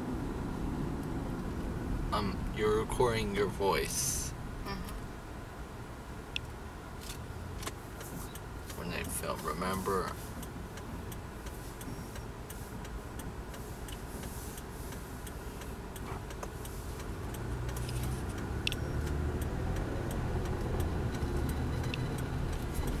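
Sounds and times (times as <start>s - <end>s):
car engine and road rumble: 0.0s - 23.0s
turn signal ticking: 0.3s - 23.0s.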